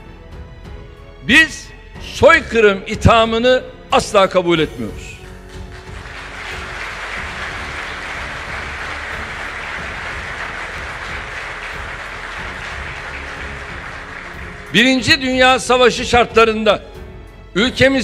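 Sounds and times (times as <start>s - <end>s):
background music: 0.0s - 18.0s
audience applauding: 5.3s - 15.3s.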